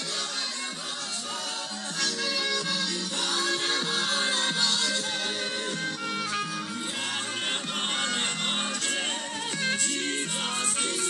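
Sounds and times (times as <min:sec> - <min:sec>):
song from tablet speakers: 0:00.0 - 0:11.0.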